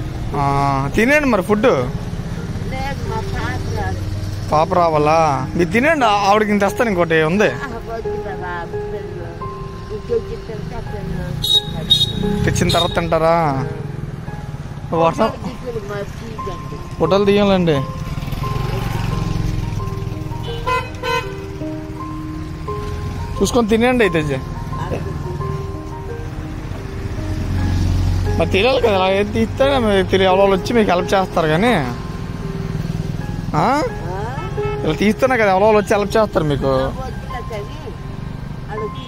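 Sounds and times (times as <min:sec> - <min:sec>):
low rumble of traffic: 0:00.0 - 0:39.0.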